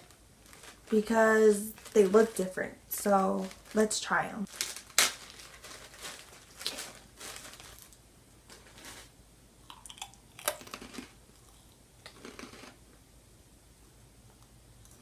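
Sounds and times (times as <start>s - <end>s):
crunchy chip being chewed: 9.7s - 12.8s.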